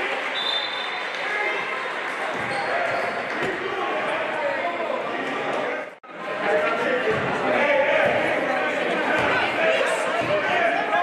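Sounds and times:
indistinct crowd voices: 0:00.0 - 0:11.0.

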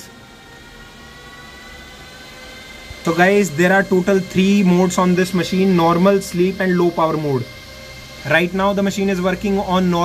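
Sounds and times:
cooling fans whirring: 0:00.0 - 0:10.0
faint high whine: 0:00.0 - 0:10.0.

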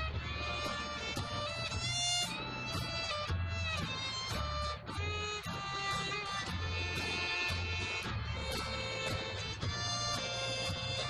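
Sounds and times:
fiddle playing lively tune: 0:00.0 - 0:11.0
strummed acoustic guitars: 0:00.0 - 0:11.0
upright bass plucking: 0:00.0 - 0:11.0.

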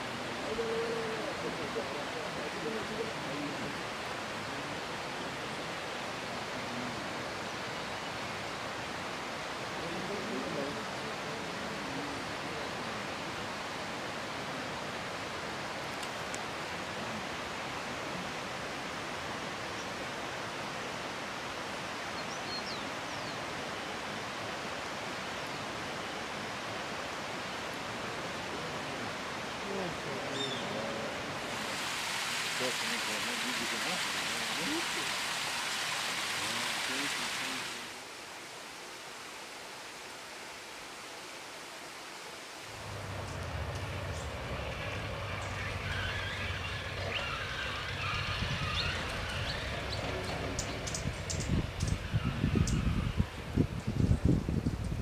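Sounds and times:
forest ambience hiss: 0:00.0 - 0:55.0
low voices murmuring: 0:42.8 - 0:53.2.

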